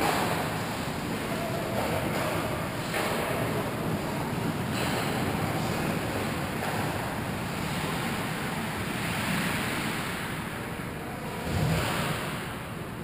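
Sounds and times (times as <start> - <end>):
ice rink ambience hissing: 0.0 - 13.0.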